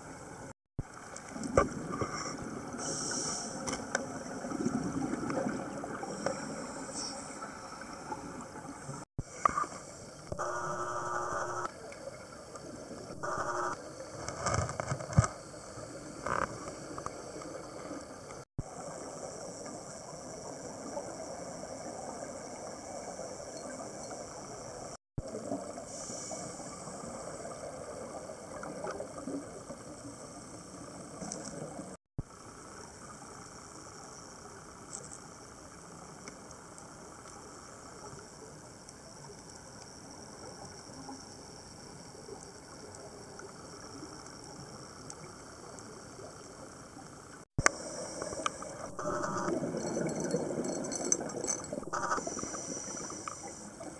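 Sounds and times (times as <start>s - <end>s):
scuba breathing: 1.9s - 3.7s, 6.0s - 8.1s, 25.9s - 27.7s, 52.0s - 53.9s
underwater hiss: 1.9s - 8.2s, 25.7s - 29.1s, 47.6s - 49.0s, 52.0s - 53.9s
regulator humming: 10.3s - 11.7s, 13.1s - 13.8s.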